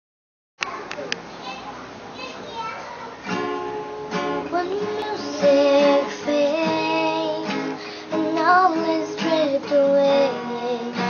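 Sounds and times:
children's high calls: 0.6 - 3.4
faint children's voices: 0.6 - 11.0
room noise: 0.6 - 11.0.

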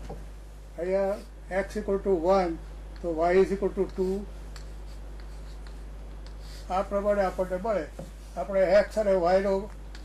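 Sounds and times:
steady low hum: 0.0 - 10.0
chalk tapping and scratching: 3.0 - 8.8.

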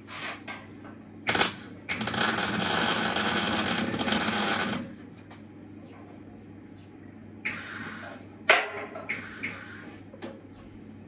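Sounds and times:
welding arc crackling: 1.3 - 5.0, 7.5 - 8.2, 9.1 - 9.9.

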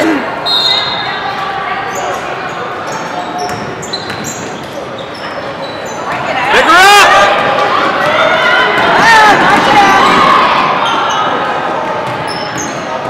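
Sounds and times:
spectators chattering: 0.0 - 13.0
sneakers squeaking on court: 0.6 - 6.5, 12.0 - 13.0.

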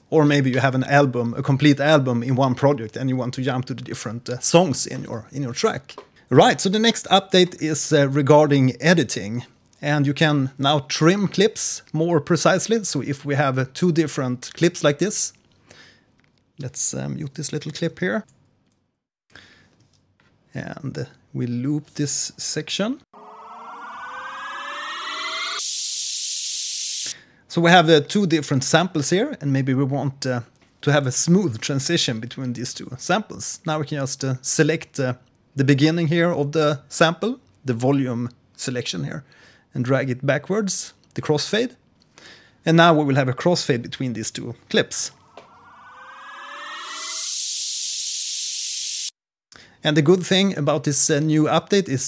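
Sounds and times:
synth riser: 23.1 - 26.3, 45.1 - 49.0
high hiss-like noise: 25.2 - 27.1, 45.1 - 49.1.

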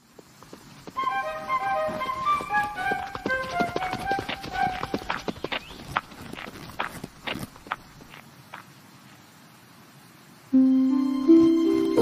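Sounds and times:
light quick footsteps: 0.0 - 9.2.

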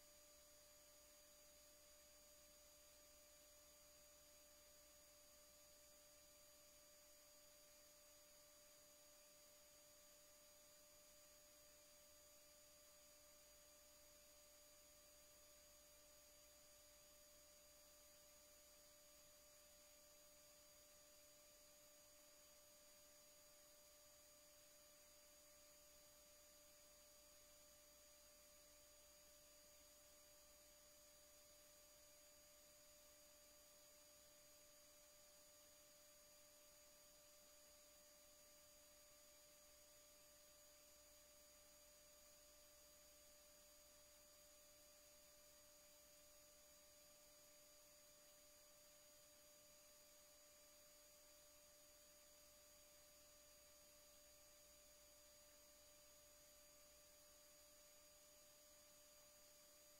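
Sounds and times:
faint steady hum with tones: 0.0 - 59.9.

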